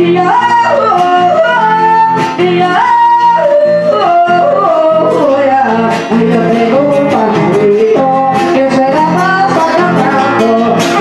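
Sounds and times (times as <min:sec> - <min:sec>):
strummed acoustic guitar: 0:00.0 - 0:11.0
woman singing: 0:00.0 - 0:11.0.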